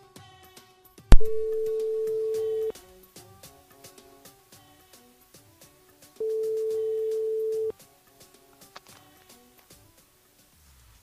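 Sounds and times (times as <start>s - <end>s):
telephone ringback tone: 1.1s - 2.7s, 6.2s - 7.7s.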